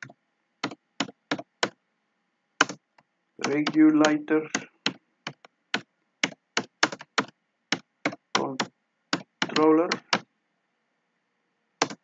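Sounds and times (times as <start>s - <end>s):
keyboard keystroke clicks: 3.4s - 10.2s.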